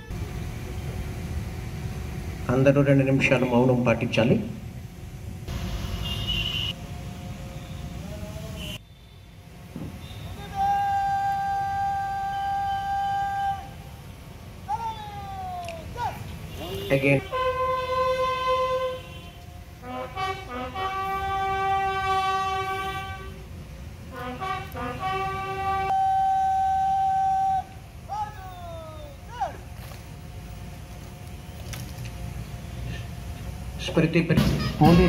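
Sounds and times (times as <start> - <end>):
bugle playing long notes: 10.2 - 13.9, 16.5 - 23.5, 24.1 - 28.1.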